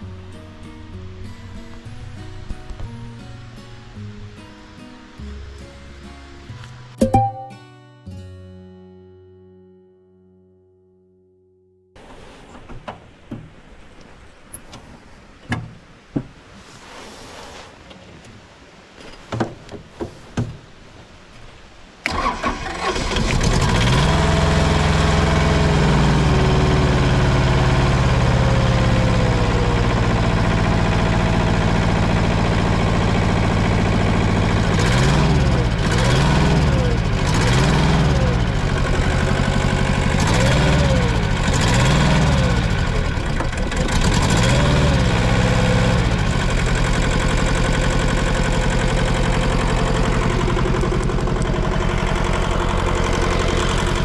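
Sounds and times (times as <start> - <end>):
diesel engine starting and revving: 22.0 - 54.0.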